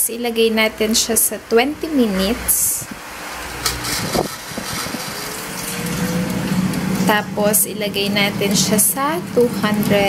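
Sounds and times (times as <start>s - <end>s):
air fryer fan whirring: 0.0s - 10.0s.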